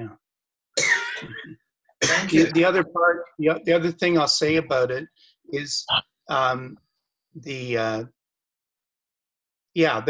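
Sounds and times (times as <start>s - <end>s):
person coughing: 0.8s - 2.5s.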